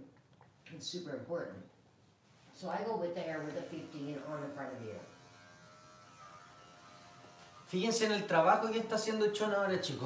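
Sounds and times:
electric clipper humming: 0:03.4 - 0:08.3.

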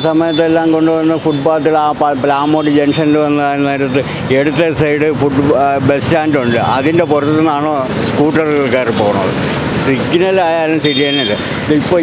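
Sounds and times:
man talking: 0:00.0 - 0:12.0
road traffic noise: 0:00.0 - 0:12.0.

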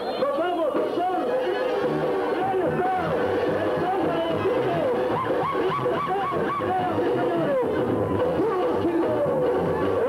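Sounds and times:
low bass beat: 0:01.8 - 0:10.0.

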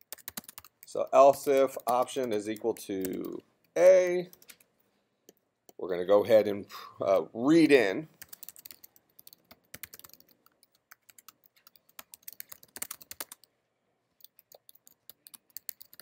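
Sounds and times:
computer keyboard typing: 0:00.0 - 0:04.7, 0:08.2 - 0:13.5, 0:14.2 - 0:16.0.

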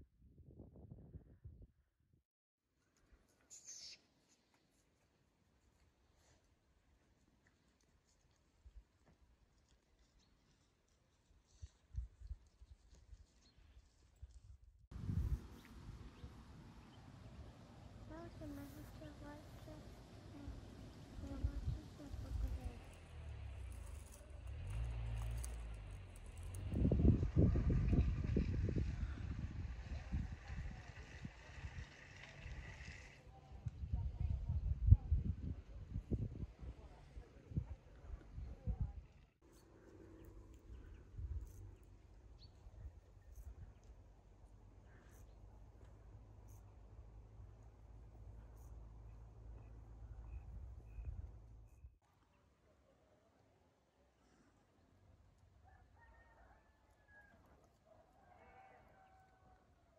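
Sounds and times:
wind buffeting microphone: 0:00.1 - 0:01.8, 0:14.4 - 0:16.4, 0:26.5 - 0:32.8, 0:33.5 - 0:39.2.

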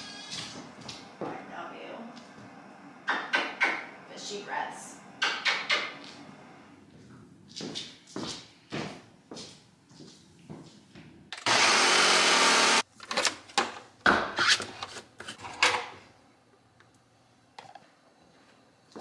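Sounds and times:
blender running: 0:11.4 - 0:12.8.

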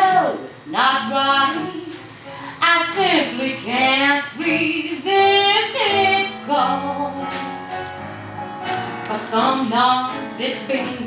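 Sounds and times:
woman singing: 0:00.0 - 0:07.5, 0:09.1 - 0:11.0.

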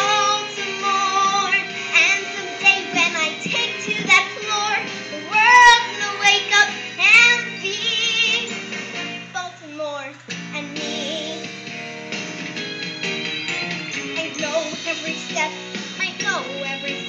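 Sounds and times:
girl singing: 0:00.0 - 0:08.6, 0:09.3 - 0:11.5, 0:14.0 - 0:17.0
instrumental accompaniment: 0:00.0 - 0:09.4, 0:10.2 - 0:17.0.

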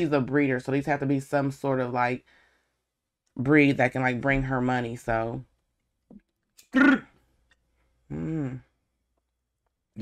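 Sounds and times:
person clearing throat: 0:06.7 - 0:07.2.

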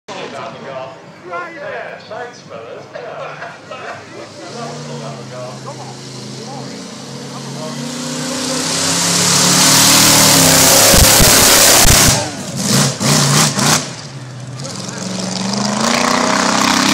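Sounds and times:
engine passing at speed: 0:04.3 - 0:16.9.

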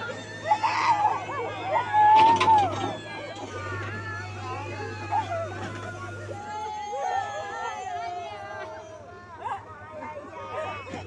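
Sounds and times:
diesel engine humming: 0:00.0 - 0:11.0.

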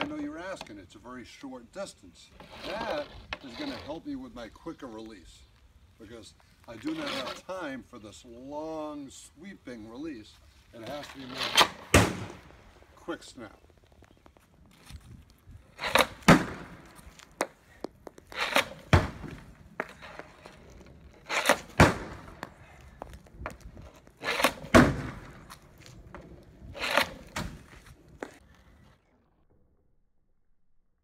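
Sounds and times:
hockey puck slapshot crack: 0:11.5 - 0:12.5, 0:15.8 - 0:17.6, 0:21.2 - 0:22.6, 0:24.2 - 0:25.6.

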